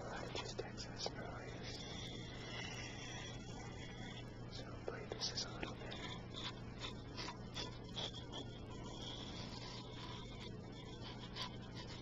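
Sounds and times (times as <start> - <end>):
man whispering: 0.0 - 2.1, 4.5 - 6.2
recorder hum and hiss: 0.0 - 12.0.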